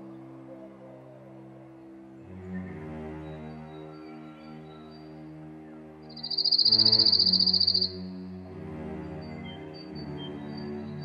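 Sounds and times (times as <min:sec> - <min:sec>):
music with sustained low notes: 0:00.0 - 0:11.0
insect trill: 0:06.1 - 0:08.0.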